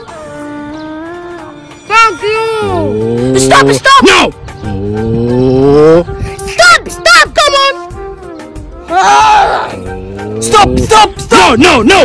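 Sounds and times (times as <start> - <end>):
low rising moo-like call: 4.6 - 6.0
person shouting: 8.9 - 9.8.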